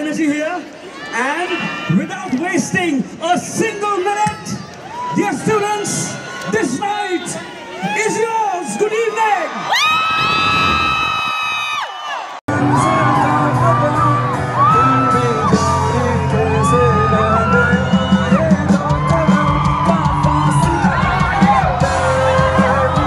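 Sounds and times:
crowd whooping and cheering: 4.4 - 23.0
live band playing: 12.5 - 23.0.

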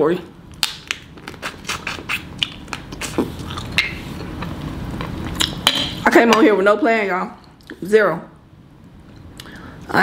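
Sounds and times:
wet mouth clicks and smacks: 0.5 - 5.8.

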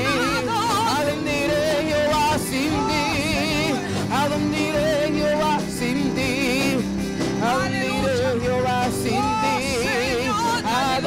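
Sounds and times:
electric guitar: 0.0 - 11.0
keyboard: 0.0 - 11.0
women singing with vibrato: 0.0 - 11.0.

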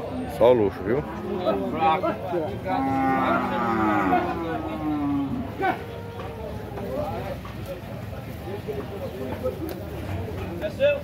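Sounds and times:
cow mooing: 2.7 - 5.6.

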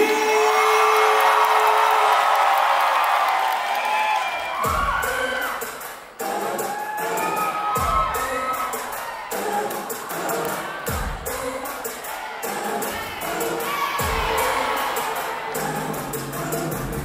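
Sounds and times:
crowd cheering and shouting: 0.0 - 17.0
dance music with deep bass: 4.6 - 17.0.

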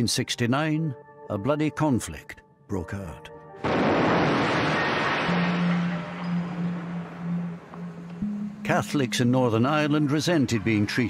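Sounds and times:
bomb explosion: 3.6 - 6.3.

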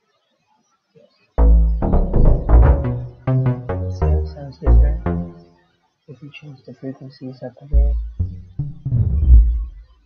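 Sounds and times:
deep synth bass notes: 1.4 - 5.5, 7.8 - 10.0.

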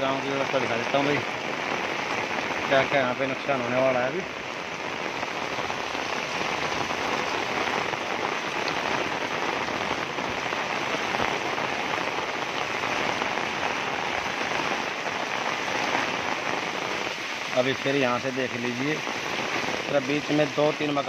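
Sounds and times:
heavy rain on pavement and water: 0.0 - 21.0.

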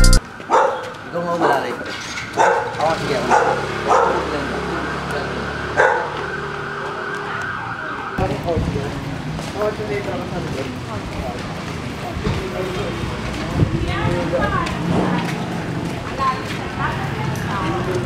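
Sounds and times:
dog barking: 0.5 - 1.6, 2.3 - 4.5, 5.7 - 6.4.

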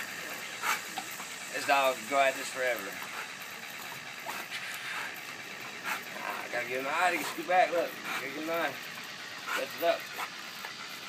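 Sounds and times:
water gun spraying hiss: 0.0 - 11.0.

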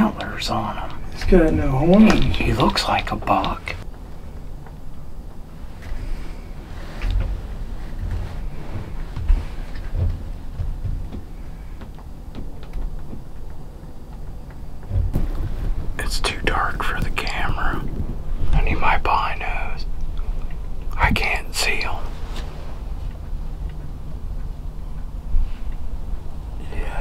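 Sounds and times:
hushed whispering voices: 0.0 - 3.8, 16.0 - 17.9, 18.5 - 20.0, 20.9 - 22.2, 26.6 - 27.0
steady low rumble: 0.0 - 27.0.

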